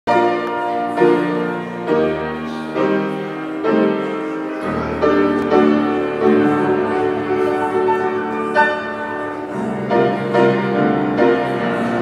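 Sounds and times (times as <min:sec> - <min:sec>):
grand piano playing slow music: 0:00.1 - 0:12.0.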